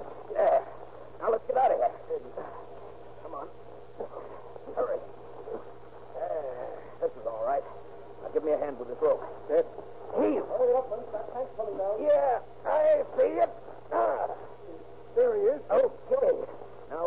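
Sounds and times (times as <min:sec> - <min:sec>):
steady low hum: 0:00.0 - 0:17.0
voices speaking: 0:00.0 - 0:17.0.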